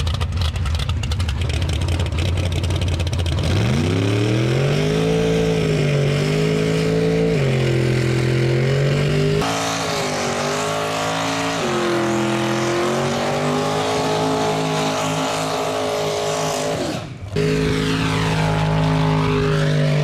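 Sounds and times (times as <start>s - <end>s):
engine at high revs: 1.4s - 20.0s.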